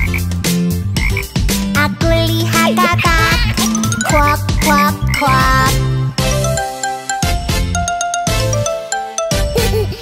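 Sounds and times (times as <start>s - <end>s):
bouncy children's song music: 0.0s - 10.0s
frog croaks: 3.4s - 5.4s.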